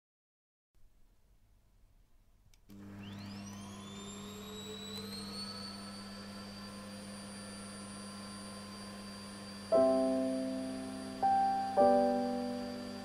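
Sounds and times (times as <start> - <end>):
vacuum cleaner motor whine: 2.7 - 13.0.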